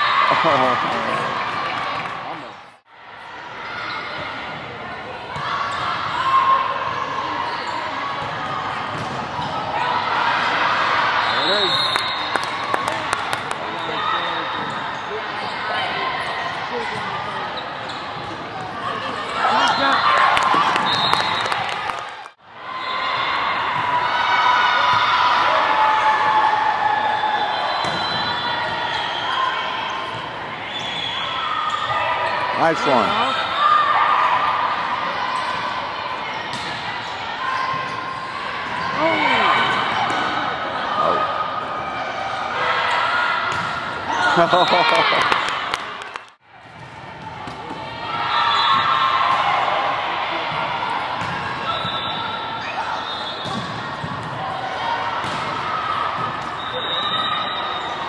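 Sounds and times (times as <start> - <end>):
players and spectators voices: 0.0 - 58.0.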